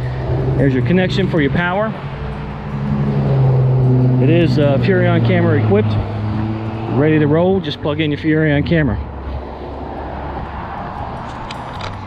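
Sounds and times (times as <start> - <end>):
road traffic engine hum: 0.0 - 12.0.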